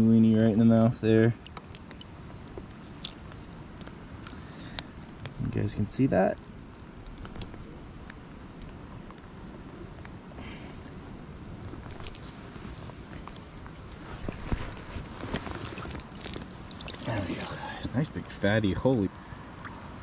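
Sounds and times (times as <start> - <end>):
flowing creek water: 14.2 - 20.0
fish splashing in net: 14.3 - 17.6.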